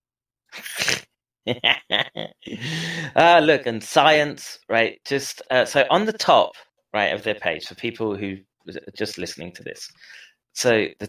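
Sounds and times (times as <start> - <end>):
man laughing: 0.6 - 3.4
man breathy burst: 2.5 - 3.2.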